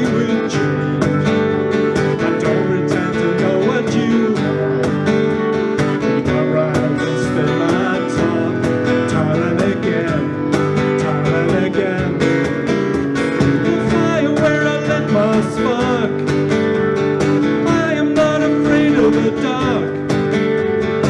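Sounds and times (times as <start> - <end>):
acoustic guitars strummed: 0.0 - 21.0.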